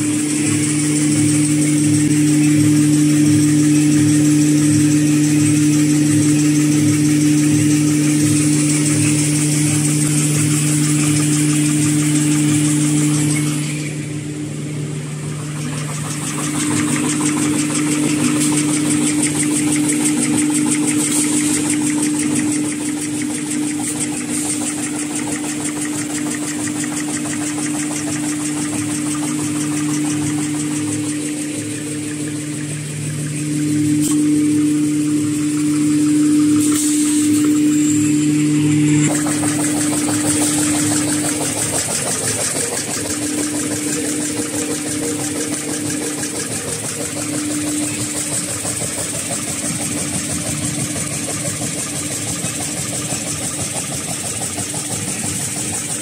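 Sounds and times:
folding machine humming: 0:00.0 - 0:56.0.

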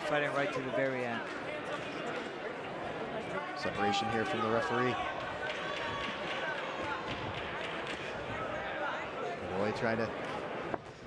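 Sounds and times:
crowd voices and shouts: 0:00.0 - 0:11.0.

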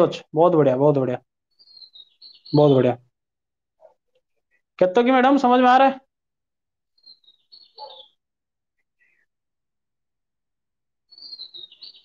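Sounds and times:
faint bird chirping: 0:00.6 - 0:04.8, 0:06.8 - 0:09.5, 0:11.0 - 0:12.0.

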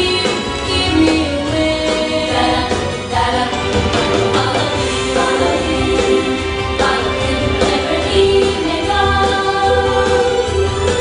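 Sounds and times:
instrumental backing with bass line: 0:00.0 - 0:11.0
choir singing: 0:02.1 - 0:11.0.

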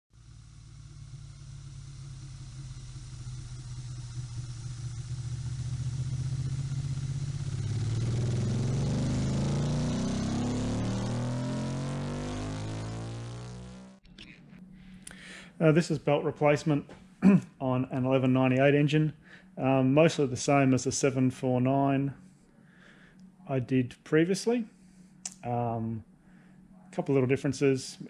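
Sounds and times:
vehicle engine revving: 0:00.2 - 0:14.0.

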